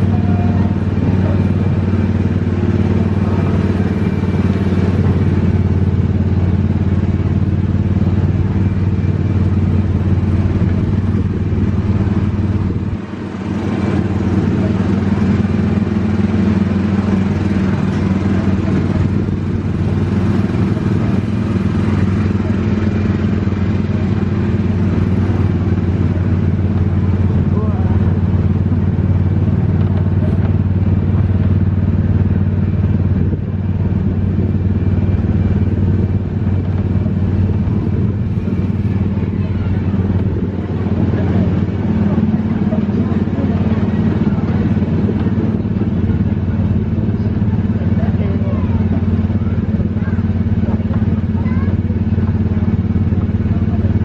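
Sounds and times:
ride car engine running: 0:00.0 - 0:54.0.

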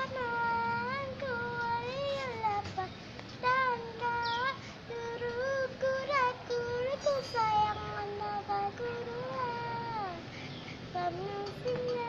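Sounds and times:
high-pitched voice singing: 0:00.0 - 0:10.2, 0:11.0 - 0:12.0.

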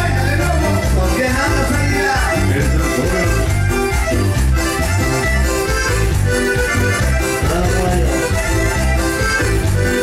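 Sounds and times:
accordion melody: 0:00.0 - 0:10.0
rhythmic bass line: 0:00.0 - 0:10.0
strummed guitar: 0:00.0 - 0:10.0.

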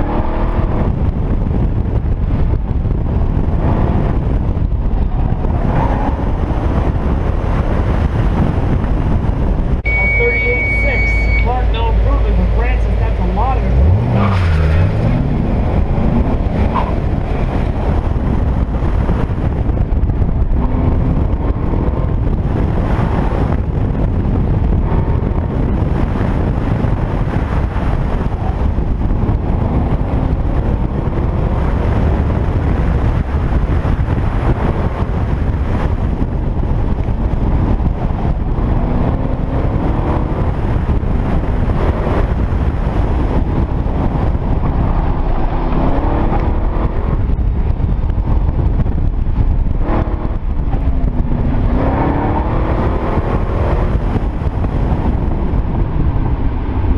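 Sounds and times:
car engine accelerating and slowing: 0:00.0 - 0:56.9
wind buffeting on microphone: 0:00.0 - 0:56.9.

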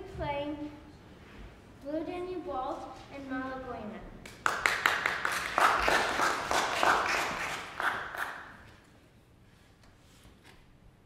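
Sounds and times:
audience applause: 0:04.4 - 0:08.6.

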